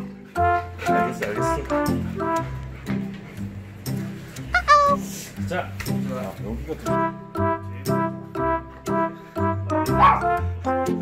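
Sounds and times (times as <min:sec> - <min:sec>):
dog yelping: 0:04.6 - 0:05.0, 0:10.0 - 0:10.3.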